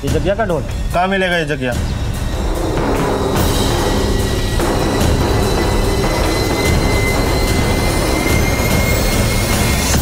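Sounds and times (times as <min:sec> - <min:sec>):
low rumbling drone: 0:01.9 - 0:10.0
steady high tone: 0:02.2 - 0:10.0.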